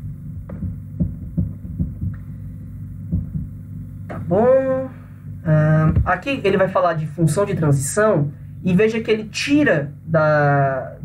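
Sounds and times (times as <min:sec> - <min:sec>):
low electrical hum: 0:00.0 - 0:11.0
soft thumps: 0:00.4 - 0:02.3, 0:03.0 - 0:04.2.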